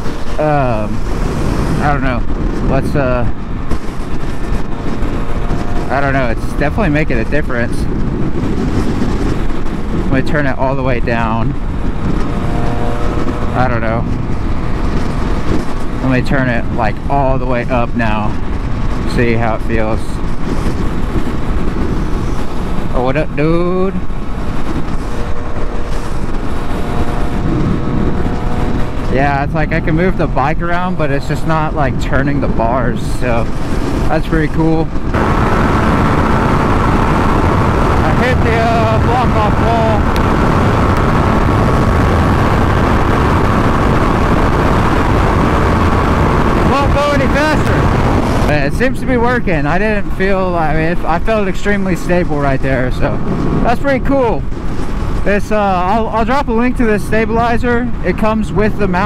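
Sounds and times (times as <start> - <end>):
motorcycle engine and road noise: 0.0 - 59.0
wind rushing over microphone: 0.0 - 59.0.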